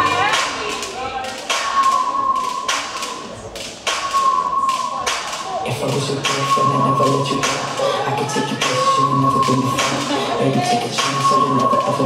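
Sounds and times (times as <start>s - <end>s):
music held tone: 1.7s - 12.0s.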